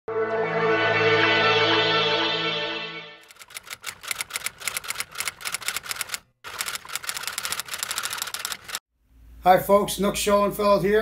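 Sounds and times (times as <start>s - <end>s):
typewriter keystrokes clacking: 3.3s - 8.8s.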